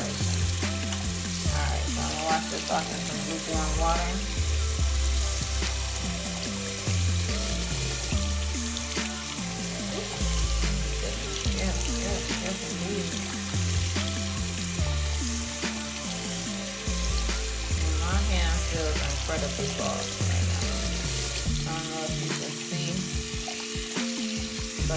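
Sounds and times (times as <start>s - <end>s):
music with strong bass line: 0.0s - 22.3s, 23.1s - 24.9s
tap water running into sink: 0.0s - 24.9s.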